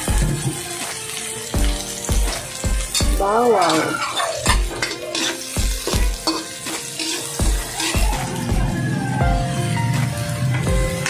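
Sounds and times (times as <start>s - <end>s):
background music with beat: 0.0s - 11.0s
onions sizzling in a wok: 0.0s - 11.0s.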